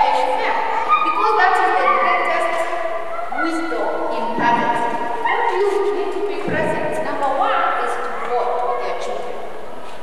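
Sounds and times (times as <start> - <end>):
garbled woman's voice: 0.0 - 9.3.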